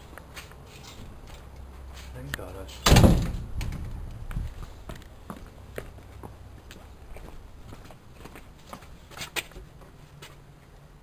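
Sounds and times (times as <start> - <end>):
door slamming: 2.8 - 3.9.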